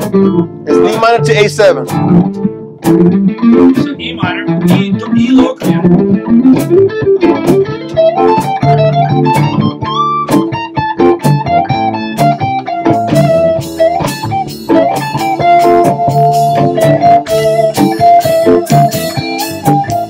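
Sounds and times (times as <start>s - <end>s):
acoustic guitar chords: 0.0s - 20.0s
electric guitar lead: 0.0s - 20.0s.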